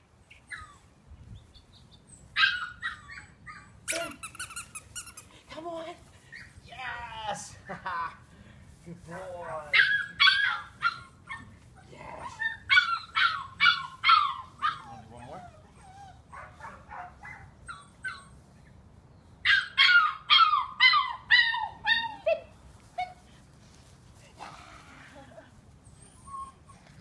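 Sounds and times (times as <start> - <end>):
puppy whining: 0.3 - 0.9, 2.1 - 5.2, 9.9 - 16.4, 25.8 - 27.0
puppy yipping barks: 9.8 - 11.4, 12.6 - 15.0.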